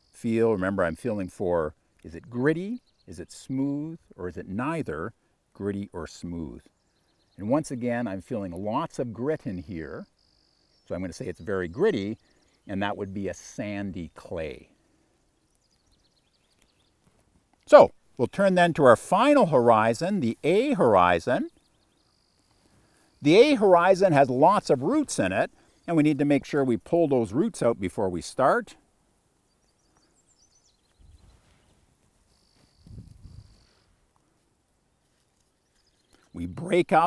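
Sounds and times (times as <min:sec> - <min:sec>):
faint high bird chirps: 0:06.6 - 0:17.0, 0:19.6 - 0:26.0, 0:29.4 - 0:33.9, 0:35.0 - 0:37.0.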